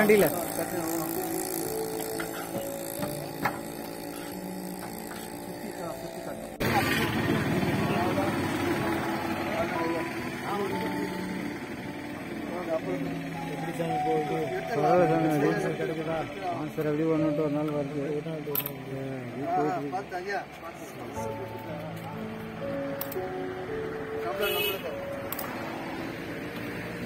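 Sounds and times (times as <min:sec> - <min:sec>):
people talking indistinctly: 0:00.0 - 0:25.2.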